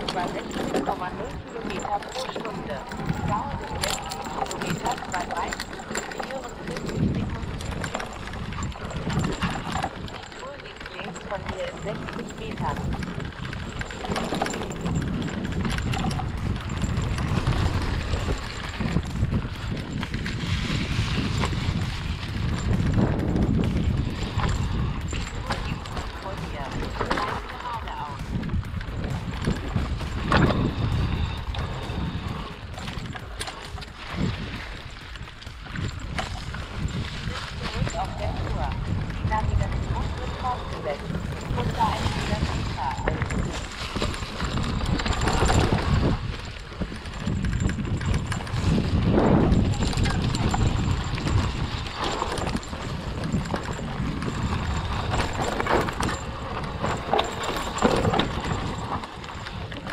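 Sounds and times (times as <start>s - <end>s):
bike rattling and knocking: 0.0s - 59.9s
tyres over dry leaves and dirt: 0.0s - 59.9s.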